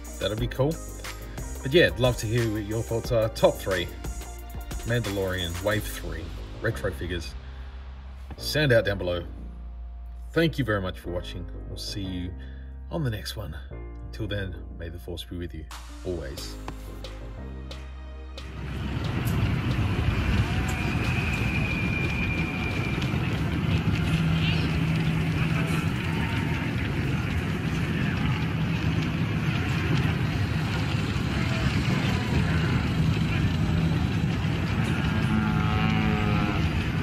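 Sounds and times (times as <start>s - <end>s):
dense machinery rumble: 0.0s - 10.4s, 16.5s - 37.0s.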